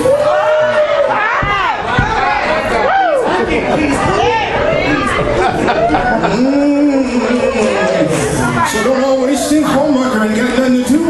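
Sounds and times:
man preaching into a microphone: 0:06.8 - 0:11.0.

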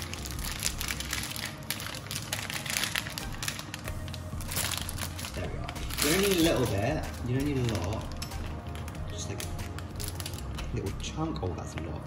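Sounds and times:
plastic bag crinkling: 0:00.0 - 0:10.8.

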